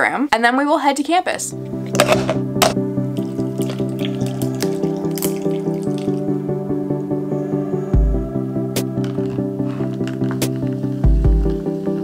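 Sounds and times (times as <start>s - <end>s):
background music with sustained chords: 1.5s - 12.0s
coffee pouring onto ice: 3.2s - 6.2s, 9.0s - 10.7s.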